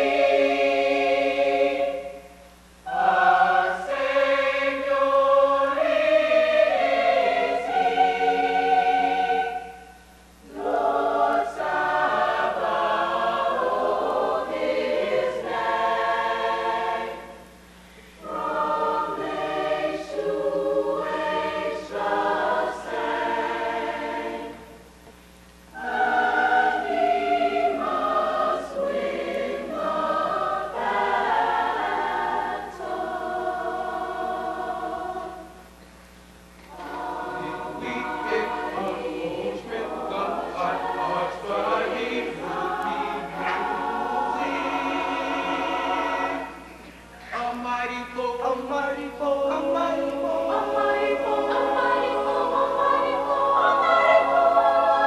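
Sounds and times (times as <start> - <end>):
mixed choir singing chords: 0.0 - 25.1, 25.7 - 35.8, 36.6 - 47.6, 48.3 - 55.0.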